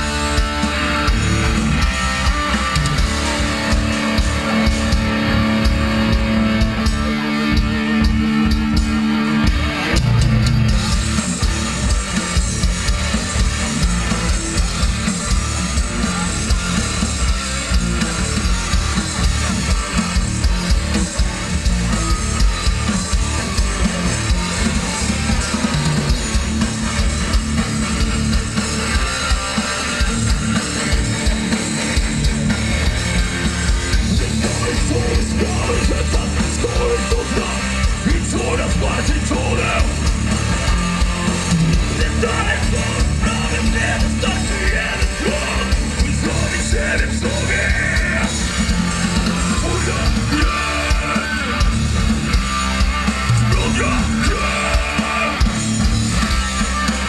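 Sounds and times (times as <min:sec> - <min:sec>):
live metal band playing: 0:00.0 - 0:57.0.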